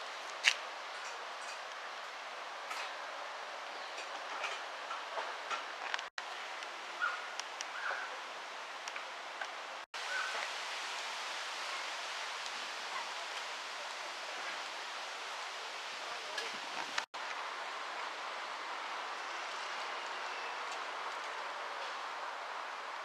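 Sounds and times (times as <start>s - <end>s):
hissing outdoor background noise: 0.0s - 23.0s.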